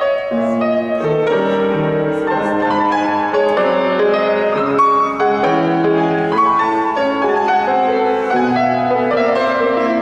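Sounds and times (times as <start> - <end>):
solo grand piano tango: 0.0 - 10.0.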